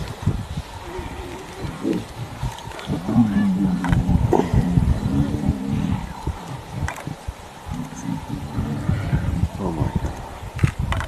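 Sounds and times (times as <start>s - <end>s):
lion growling low: 0.0s - 10.4s.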